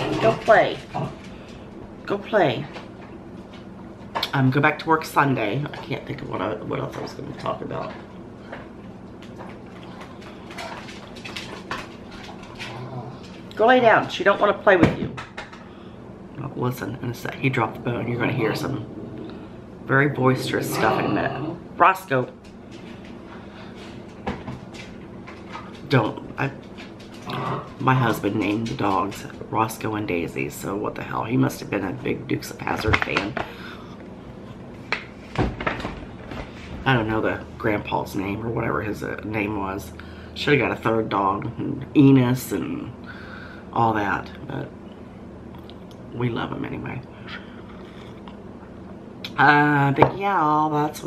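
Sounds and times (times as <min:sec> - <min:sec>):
low room hum: 0:00.0 - 0:51.0.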